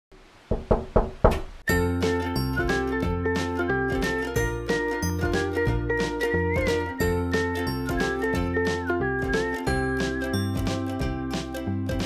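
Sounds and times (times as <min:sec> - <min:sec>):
knocks on a door: 0:00.5 - 0:01.6
music: 0:01.7 - 0:12.0.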